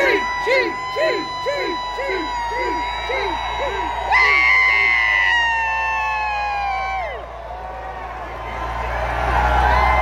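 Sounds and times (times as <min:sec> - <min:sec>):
mechanical fire engine siren: 0:00.0 - 0:08.8
crowd cheering: 0:00.0 - 0:10.0.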